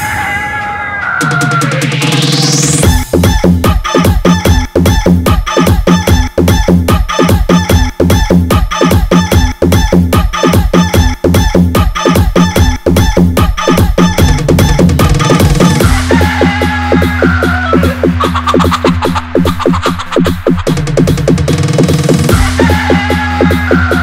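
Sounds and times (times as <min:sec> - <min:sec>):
rooster crowing: 0:00.0 - 0:01.8, 0:16.1 - 0:19.6, 0:22.3 - 0:24.0
electronic dance music: 0:00.0 - 0:24.0
hen clucking: 0:17.1 - 0:20.8.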